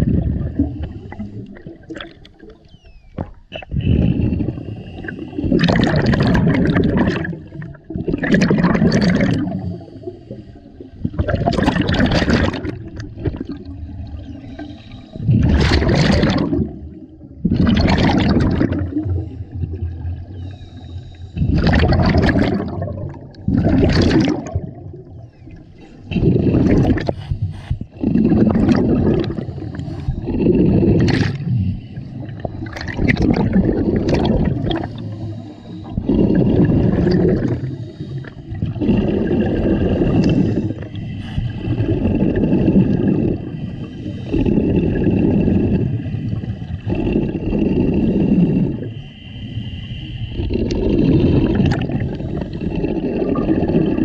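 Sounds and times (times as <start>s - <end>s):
bubbling rush of exhaled air: 0.0s - 54.0s
hiss of regulator breathing: 20.3s - 21.5s, 27.0s - 28.0s, 29.3s - 32.6s, 34.8s - 36.1s, 37.5s - 38.6s, 40.0s - 42.1s, 43.4s - 44.7s, 48.0s - 50.4s.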